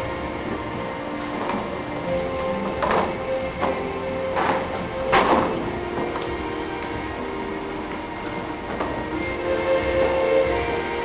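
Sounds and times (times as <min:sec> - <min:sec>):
worship music sustained chords: 0:00.0 - 0:11.0.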